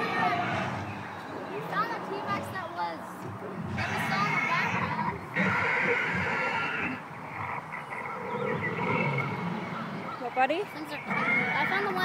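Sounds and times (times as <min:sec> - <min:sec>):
dinosaur growl through loudspeaker: 0:00.0 - 0:00.9, 0:11.0 - 0:12.0.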